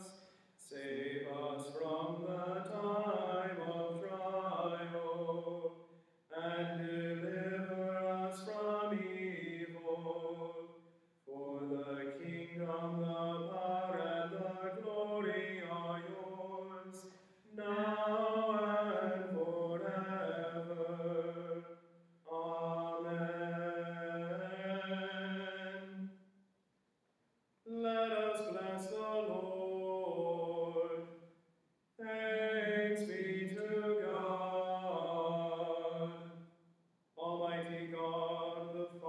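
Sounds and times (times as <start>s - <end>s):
man chanting prayer: 6.3s - 10.4s, 11.3s - 21.5s, 32.0s - 36.1s, 37.2s - 39.0s.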